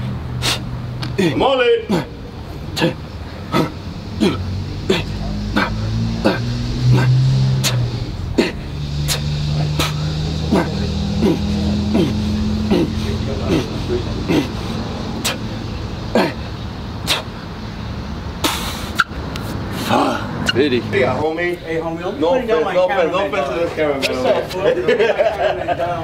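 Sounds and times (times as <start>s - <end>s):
long held bass notes: 1.9s - 16.4s.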